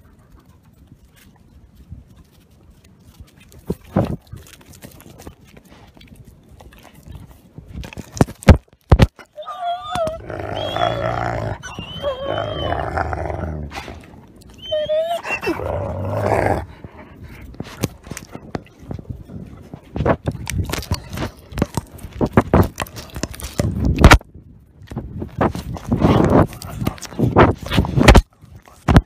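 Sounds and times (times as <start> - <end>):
wolf growling: 9.3 - 19.7.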